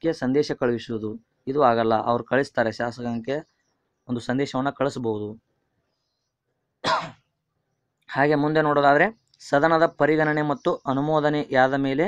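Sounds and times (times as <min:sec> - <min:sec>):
man clearing his throat: 0:06.8 - 0:07.2.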